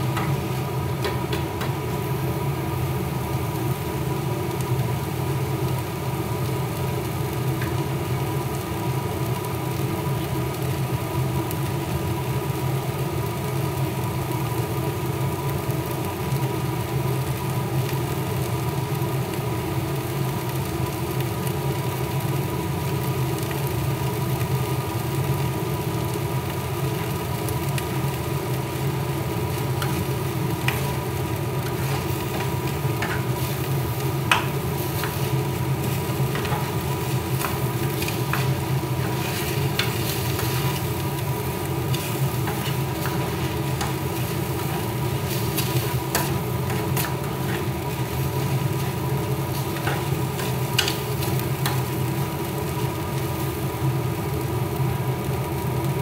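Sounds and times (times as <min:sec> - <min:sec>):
motor-driven fan humming: 0:00.0 - 0:56.0.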